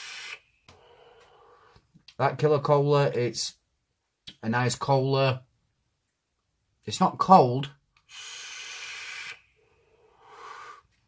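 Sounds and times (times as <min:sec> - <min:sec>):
air hissing through vape: 0:00.0 - 0:00.4, 0:08.0 - 0:10.8
soft exhale: 0:08.1 - 0:11.0.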